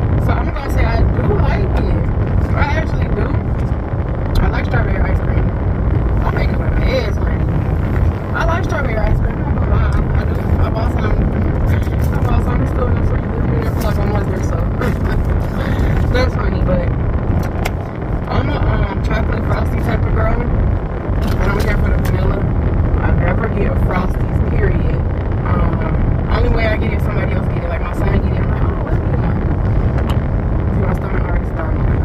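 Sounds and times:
car cabin rumble: 0:00.0 - 0:32.0
woman talking: 0:00.2 - 0:03.7, 0:04.3 - 0:17.6, 0:18.3 - 0:20.6, 0:21.2 - 0:29.6, 0:30.7 - 0:32.0.

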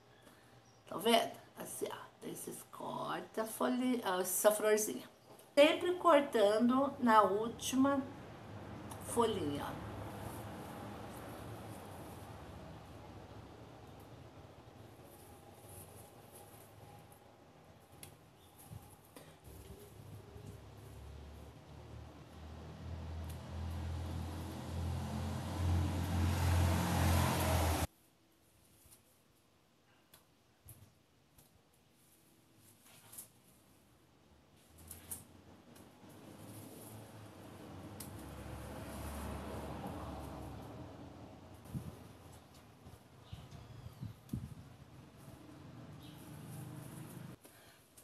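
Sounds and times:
rustling of herb leaves: 0:09.0 - 0:13.4, 0:14.0 - 0:21.6, 0:34.5 - 0:41.0, 0:41.7 - 0:48.0
scissors snipping stems: 0:37.6 - 0:39.2.

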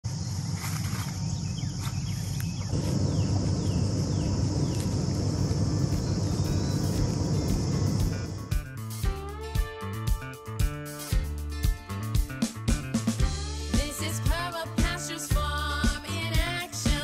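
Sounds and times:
high insect drone: 0:00.1 - 0:08.8
falling bird chirps: 0:00.2 - 0:08.5
low rumble: 0:02.7 - 0:08.6.

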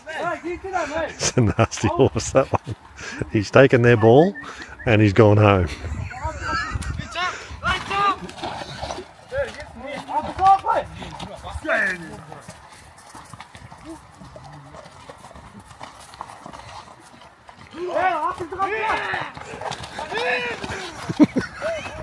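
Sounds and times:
horse hooves clopping on hard ground: 0:04.6 - 0:22.0
people calling out: 0:17.7 - 0:22.0.

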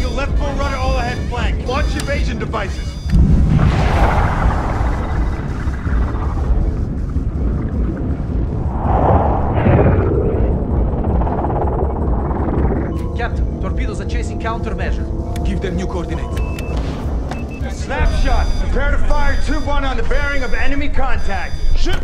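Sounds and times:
dramatic film score: 0:00.0 - 0:22.0
deep underwater rushing whoosh: 0:03.2 - 0:13.0.

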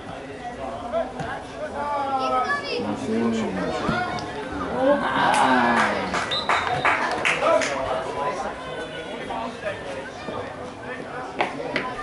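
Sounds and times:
adults talking: 0:00.0 - 0:12.0
children calling and shouting: 0:00.1 - 0:12.0.

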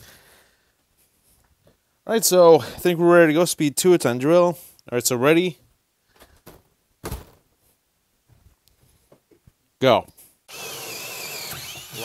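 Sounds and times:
faint knocks and rustles: 0:06.1 - 0:10.4.

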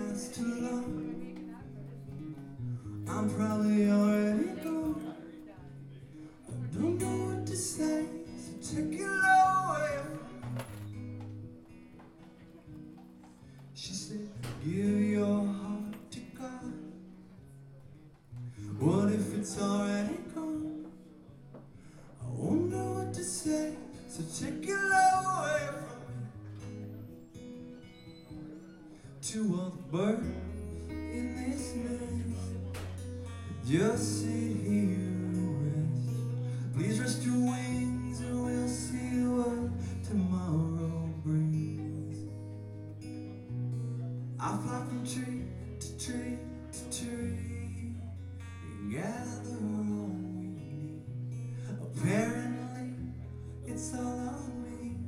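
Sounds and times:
man singing: 0:00.0 - 0:01.5, 0:02.3 - 0:11.0, 0:13.7 - 0:17.0, 0:18.5 - 0:21.6, 0:22.2 - 0:26.4, 0:29.2 - 0:42.6, 0:44.3 - 0:55.0
strummed acoustic guitar: 0:00.0 - 0:55.0.

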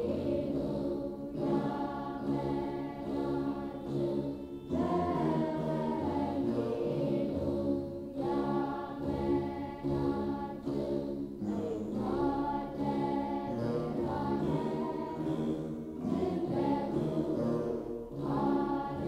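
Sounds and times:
group of voices singing a hymn: 0:00.0 - 0:19.0.

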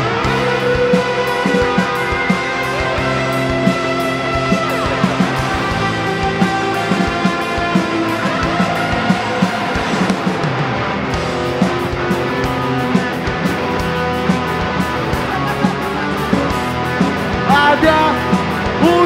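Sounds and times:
electric guitar held notes: 0:00.0 - 0:19.0
steady drum beat: 0:00.0 - 0:19.0
person singing: 0:17.4 - 0:19.0.

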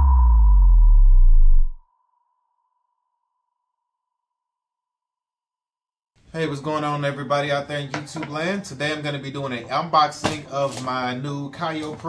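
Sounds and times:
deep boom falling in pitch: 0:00.0 - 0:01.8.

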